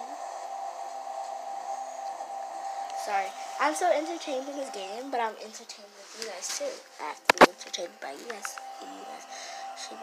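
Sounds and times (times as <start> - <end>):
steady hum with hiss: 0.0 - 10.0.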